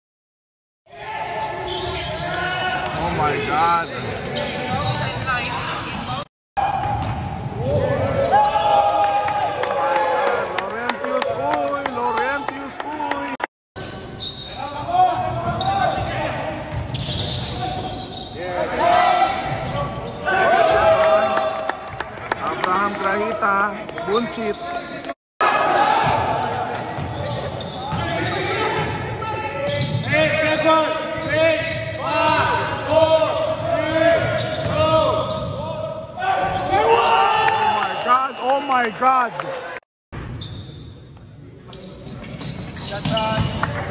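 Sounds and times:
basketball bouncing on court: 31.1 - 35.6, 42.4 - 43.9.

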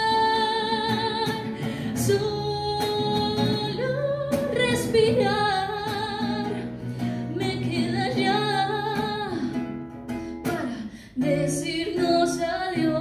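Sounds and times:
acoustic guitar strumming: 0.0 - 13.0
woman singing with vibrato: 0.0 - 13.0.

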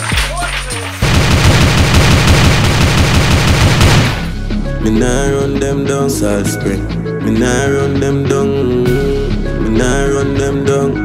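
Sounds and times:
rapid automatic gunfire: 1.0 - 4.4
song bass line: 4.0 - 11.0.

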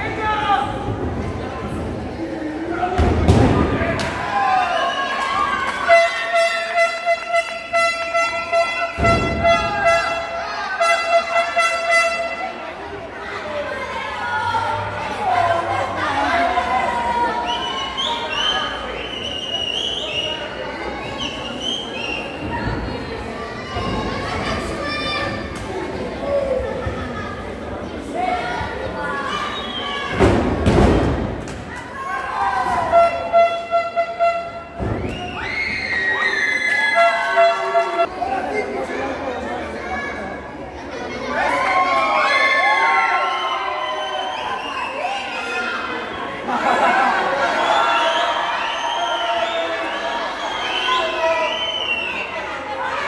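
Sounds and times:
arena crowd shouting: 2.4 - 30.2, 31.7 - 53.0
handheld horn toot: 32.9 - 34.7.

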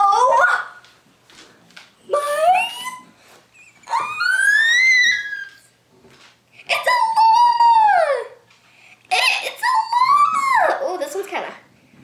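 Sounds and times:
girl squealing with excitement: 3.8 - 5.7.

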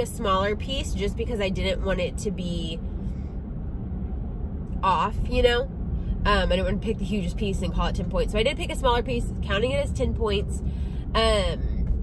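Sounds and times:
woman speaking: 0.0 - 2.8, 4.8 - 5.7, 6.3 - 10.6, 11.2 - 11.7
car cabin road noise: 0.0 - 12.0.

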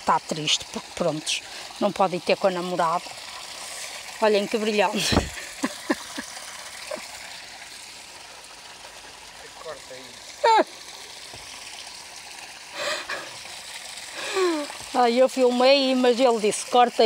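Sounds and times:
water trickling from water feature: 0.0 - 17.0.

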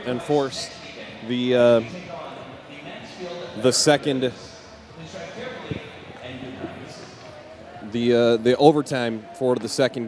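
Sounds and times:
faint distant voices: 0.0 - 10.0
low hall ambience: 0.0 - 10.0.

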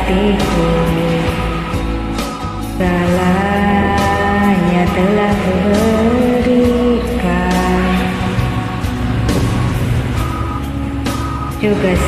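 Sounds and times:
instrumental backing track: 0.0 - 12.0.

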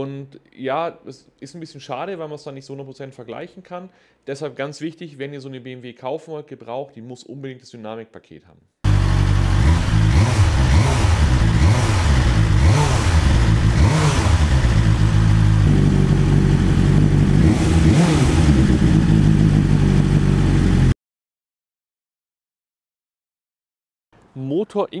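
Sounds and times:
motorcycle engine revving: 8.8 - 21.0.

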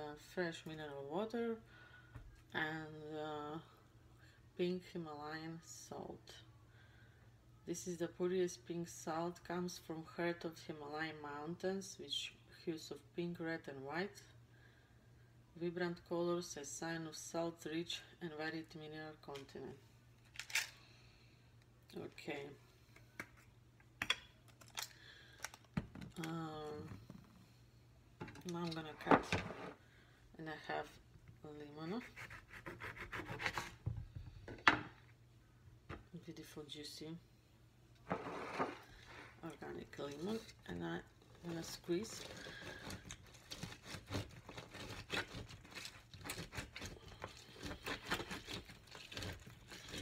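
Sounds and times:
lemon scraping on plastic juicer: 38.0 - 39.5, 41.3 - 50.0.

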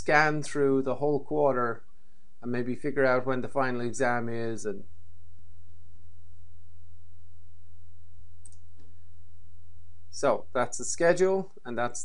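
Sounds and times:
low electrical hum: 0.0 - 12.0
computer mouse click: 8.4 - 8.9.

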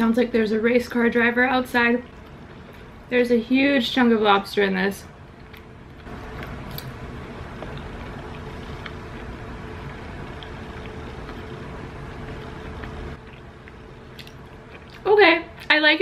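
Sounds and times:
wet chewing clicks: 5.3 - 15.8.

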